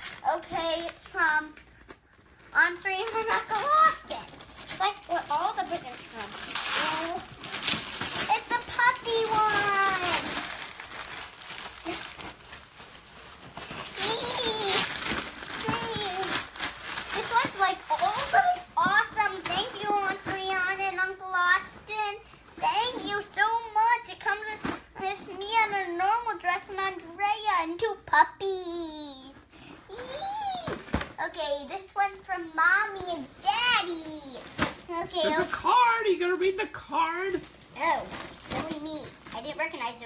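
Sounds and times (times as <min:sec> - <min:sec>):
child's excited voice: 0:00.0 - 0:01.6, 0:02.5 - 0:07.4, 0:08.2 - 0:10.6, 0:13.9 - 0:16.5, 0:17.1 - 0:40.0
wrapping paper tearing and crinkling: 0:00.0 - 0:27.1, 0:28.6 - 0:40.0.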